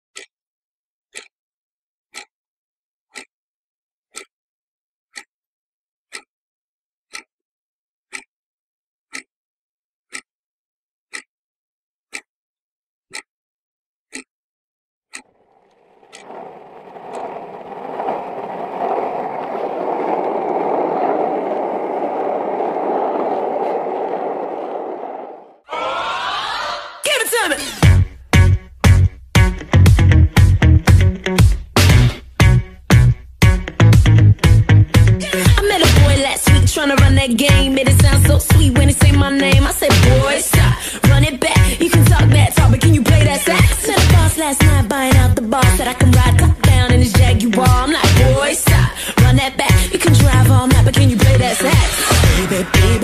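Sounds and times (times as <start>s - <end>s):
clock ticking: 1.1s - 1.3s, 2.1s - 2.3s, 15.1s - 17.4s
scraping rolling noise: 15.2s - 25.6s, 46.0s - 53.0s.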